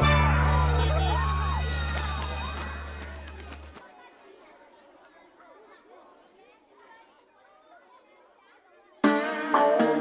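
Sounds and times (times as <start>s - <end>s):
faint chatter of voices: 2.4s - 9.1s.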